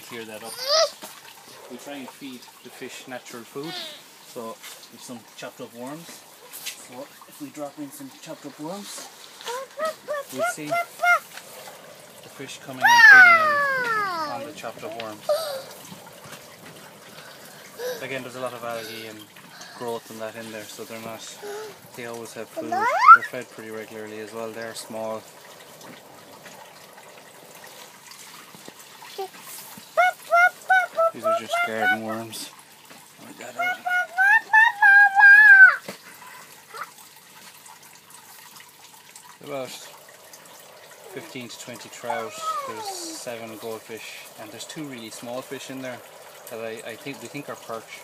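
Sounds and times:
circulating water flow: 0.0 - 48.0
water trickling into tank: 0.0 - 48.0.

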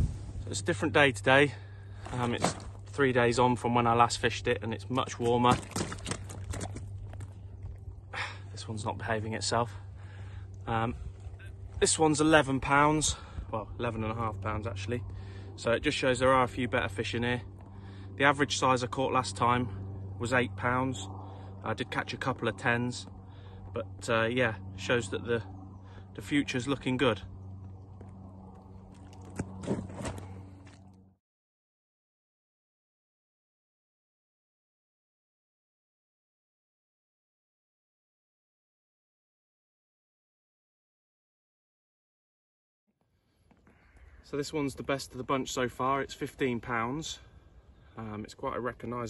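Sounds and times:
wind rumble on microphone: 0.0 - 1.3, 4.8 - 30.6
steady low hum: 0.0 - 31.2, 43.2 - 49.0
fish flapping thumps: 5.4 - 7.0.

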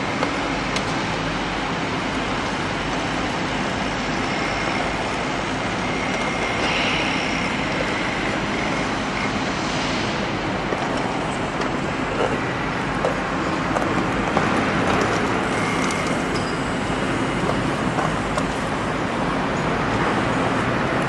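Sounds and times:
high-pitched whine: 0.0 - 13.0
heavy construction machinery running: 0.0 - 21.0.

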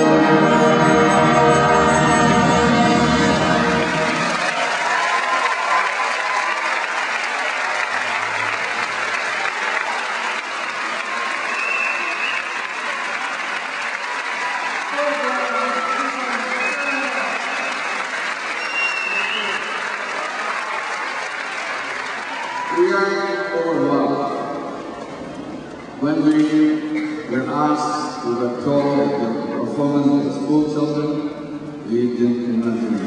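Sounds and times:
audience applauding: 3.5 - 23.8
man speaking: 26.0 - 33.0.

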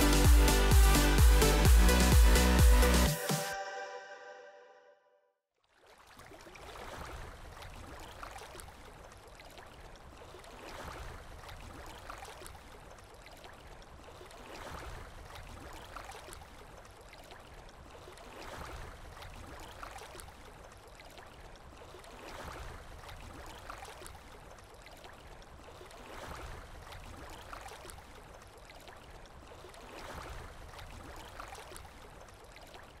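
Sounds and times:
faint rushing water: 5.6 - 33.0.

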